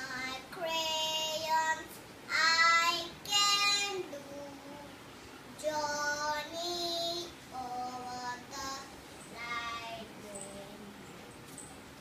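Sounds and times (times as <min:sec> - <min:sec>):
girl singing unaccompanied: 0:00.0 - 0:11.1.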